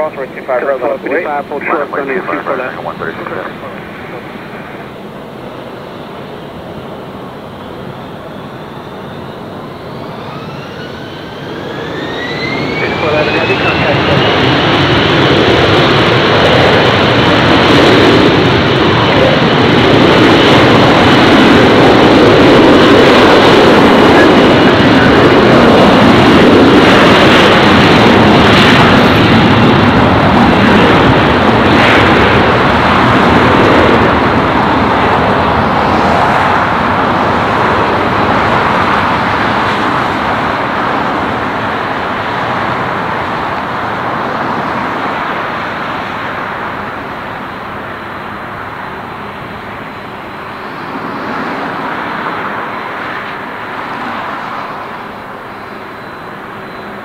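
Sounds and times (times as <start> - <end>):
jet airliner engines roaring: 0.0 - 57.0.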